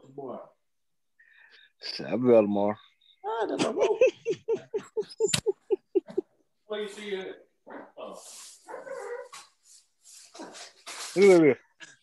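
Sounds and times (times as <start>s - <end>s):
dog barking: 7.6s - 8.0s, 8.7s - 9.5s, 10.4s - 10.7s.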